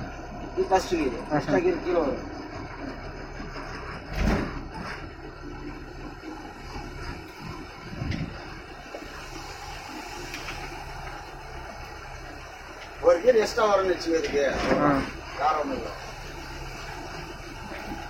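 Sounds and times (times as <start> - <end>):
bus diesel engine running: 0.0 - 18.0.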